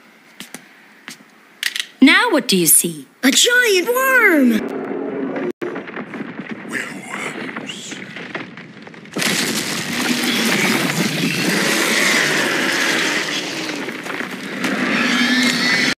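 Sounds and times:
rubble giving way: 4.6 - 15.9
rock crumbling and crashing: 5.6 - 15.4.

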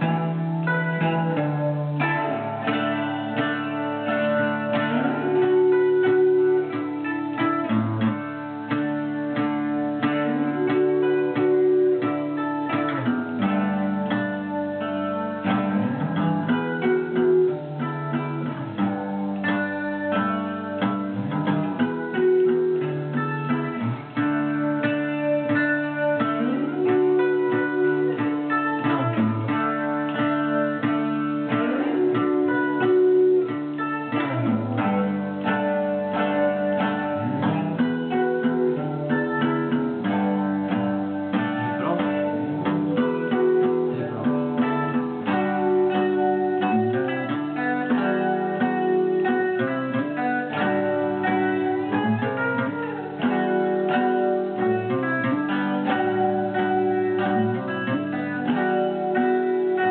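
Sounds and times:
electric guitar with sliding notes: 0.0 - 59.9.

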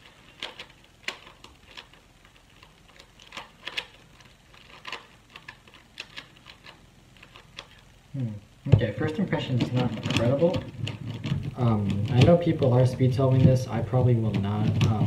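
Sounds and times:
plastic puzzle clicking: 0.0 - 7.8.

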